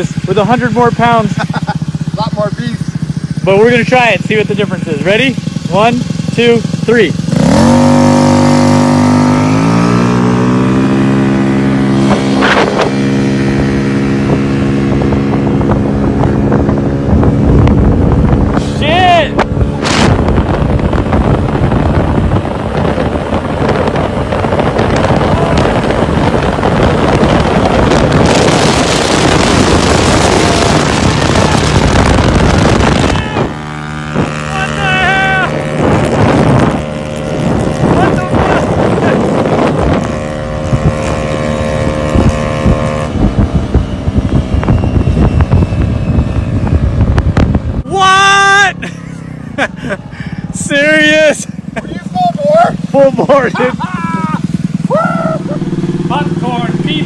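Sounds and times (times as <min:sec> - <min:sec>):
scooter engine at full throttle: 0:00.0 - 0:57.0
wind rushing over microphone: 0:00.0 - 0:57.0
person shouting: 0:33.0 - 0:33.6, 0:34.4 - 0:35.6, 0:47.8 - 0:49.0, 0:49.8 - 0:55.6.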